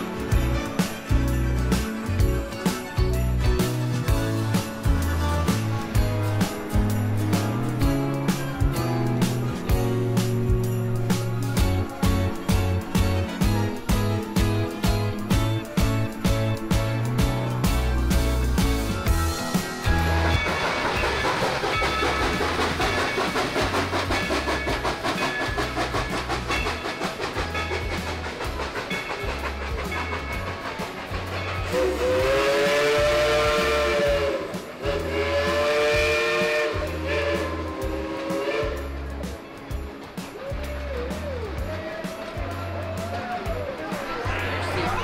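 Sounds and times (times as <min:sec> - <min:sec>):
steam locomotive chuffing: 0:00.0 - 0:45.0
steam whistle blasts: 0:31.6 - 0:38.9.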